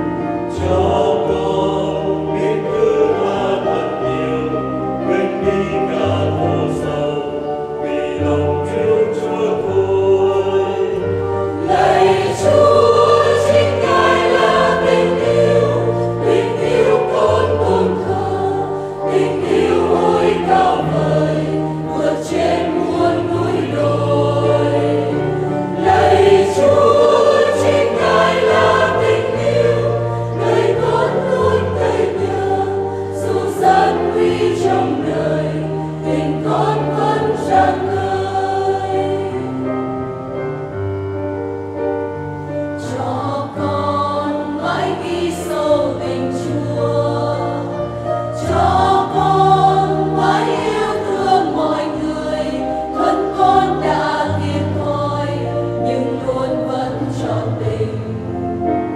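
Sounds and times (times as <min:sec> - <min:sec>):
choir singing a hymn: 0:00.0 - 0:58.9.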